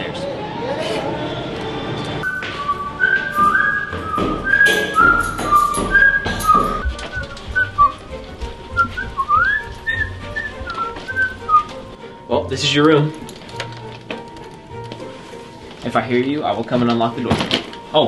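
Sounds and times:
whistled melody: 0:02.2 - 0:12.0.

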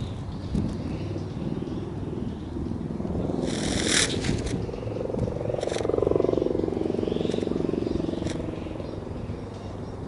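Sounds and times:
kite sail fluttering drone: 0:00.0 - 0:10.0.

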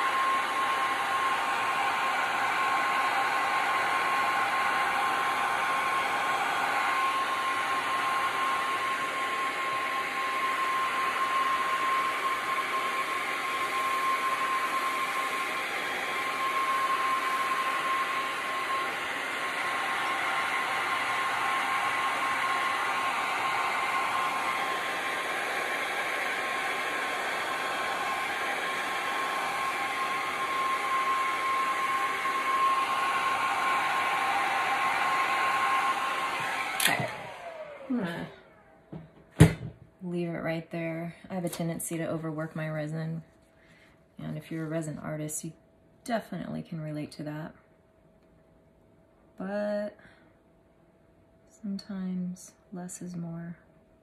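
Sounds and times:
heat gun blowing air: 0:00.0 - 0:38.6.

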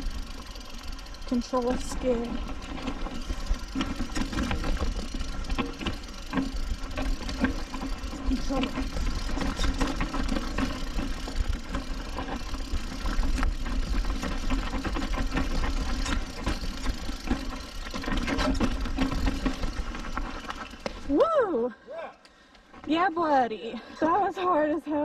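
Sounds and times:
bike rattling over rocks: 0:00.0 - 0:21.2.

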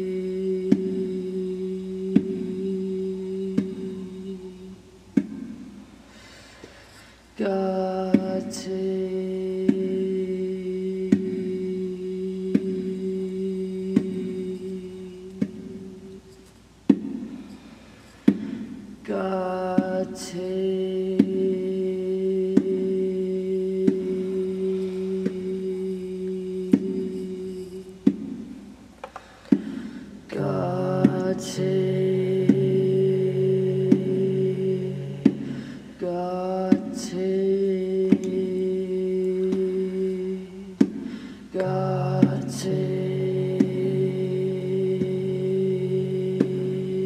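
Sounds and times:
person chanting a low note: 0:00.0 - 0:04.8, 0:30.3 - 0:40.8, 0:41.6 - 0:47.0
bongo strikes: 0:05.1 - 0:05.9, 0:16.9 - 0:17.6, 0:29.4 - 0:37.1, 0:40.8 - 0:45.4.

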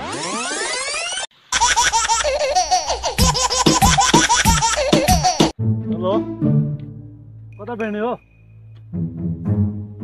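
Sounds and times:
rising pitch sweep: 0:00.0 - 0:01.3
high-pitched giggling laughter: 0:01.6 - 0:05.5.

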